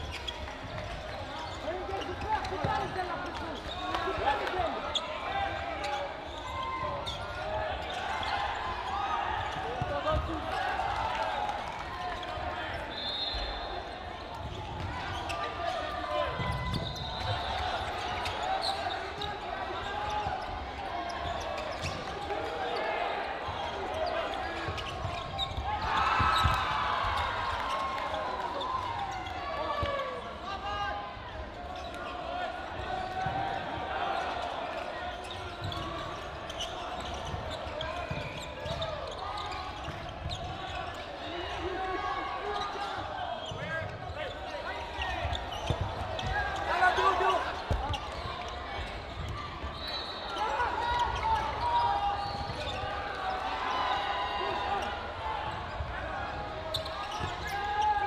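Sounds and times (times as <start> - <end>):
players calling and shouting: 0.0 - 58.0
dodgeballs thudding: 44.9 - 49.8.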